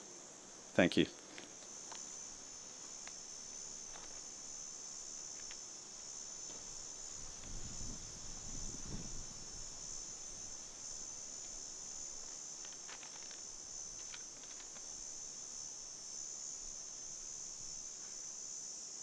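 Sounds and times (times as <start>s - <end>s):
insects trilling: 0.0s - 19.0s.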